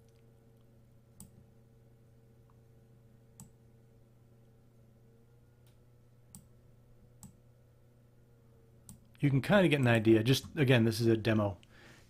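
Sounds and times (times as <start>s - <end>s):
faint steady hum: 0.0s - 12.0s
computer mouse clicks: 7.2s - 7.4s.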